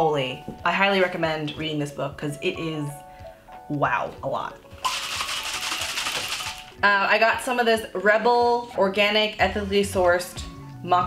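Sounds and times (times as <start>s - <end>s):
shopping bag rustling: 4.8s - 6.8s.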